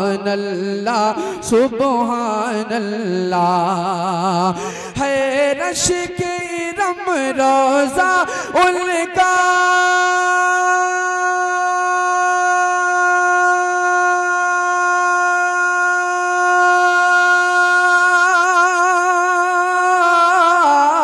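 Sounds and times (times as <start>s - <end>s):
man singing a long high note: 0.0s - 21.0s.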